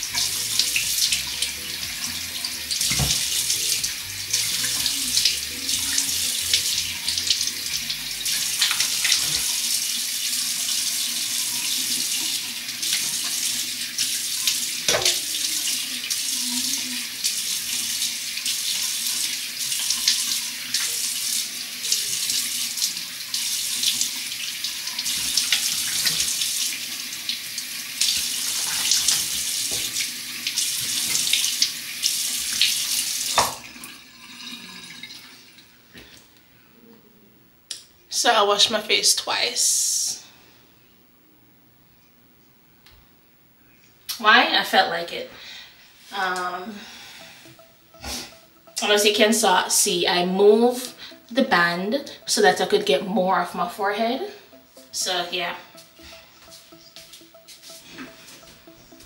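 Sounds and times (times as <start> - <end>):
sink tap running: 0.0 - 35.2.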